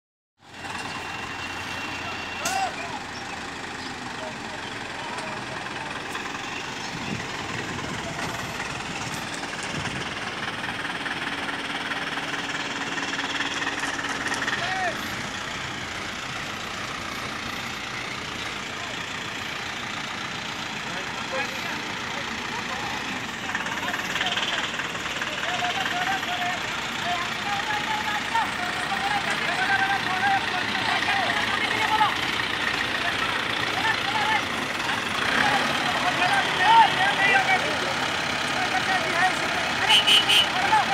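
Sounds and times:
diesel crane engines running: 0:00.4 - 0:40.9
people calling out: 0:00.8 - 0:06.1, 0:22.6 - 0:32.3, 0:32.9 - 0:40.9.

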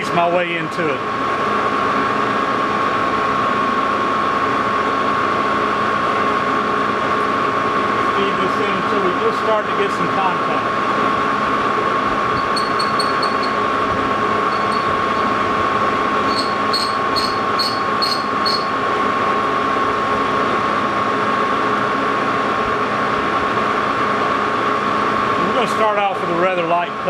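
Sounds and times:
lathe running with whine: 0:00.0 - 0:27.0.

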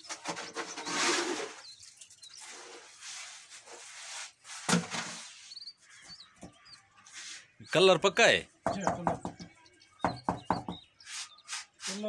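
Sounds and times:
scraping rasps of wet concrete: 0:00.0 - 0:06.0
knocks on tile mould: 0:08.6 - 0:09.5.

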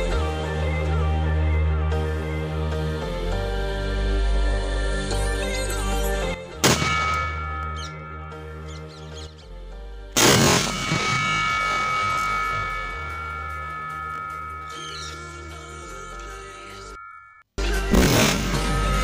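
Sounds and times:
background music: 0:00.0 - 0:19.0
firecracker bangs: 0:17.9 - 0:19.0.

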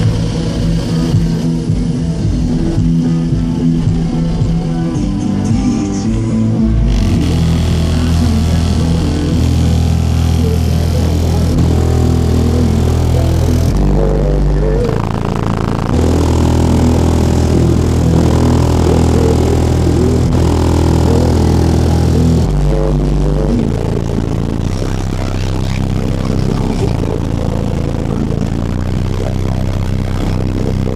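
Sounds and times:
deep bass notes: 0:00.0 - 0:30.9
loud car stereo music: 0:00.0 - 0:30.9.

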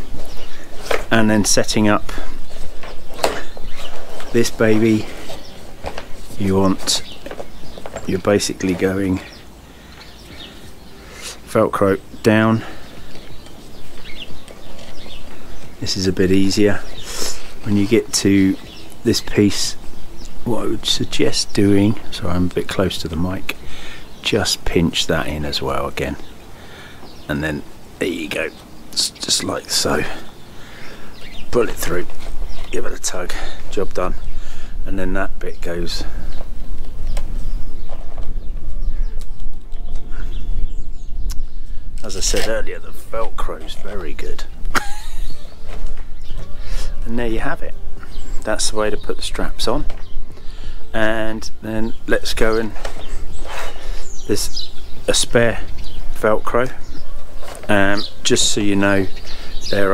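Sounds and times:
bird chirping: 0:00.0 - 0:59.9
wind buffeting microphone: 0:36.0 - 0:43.0
velcro straps scraping: 0:52.8 - 0:53.9.

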